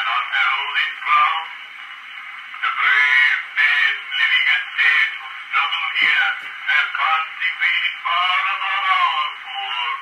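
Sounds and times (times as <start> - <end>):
phonograph recording of man reciting: 0.0 - 1.6, 2.6 - 10.0.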